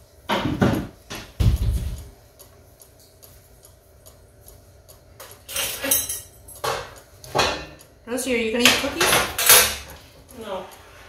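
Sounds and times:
low room hum: 0.0s - 11.0s
faint even ticking: 1.4s - 5.5s.

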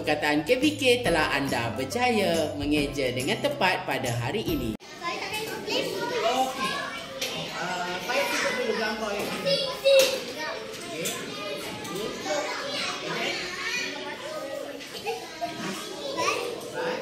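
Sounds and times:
young children chattering: 4.8s - 17.0s.

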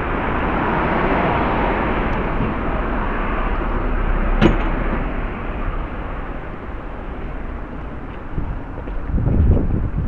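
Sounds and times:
street noise low rumble: 0.0s - 10.0s.

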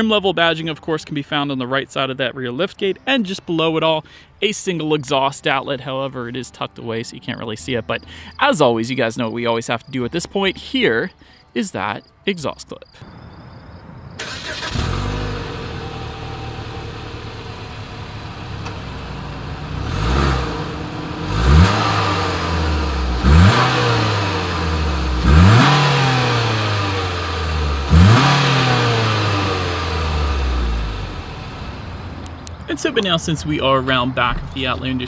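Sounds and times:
car engine idling and revving: 14.1s - 32.7s.

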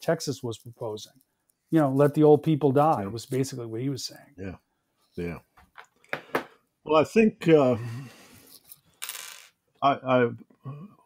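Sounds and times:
man speaking: 0.0s - 1.1s, 1.7s - 4.6s, 5.2s - 5.4s, 6.9s - 8.2s, 9.8s - 10.9s.

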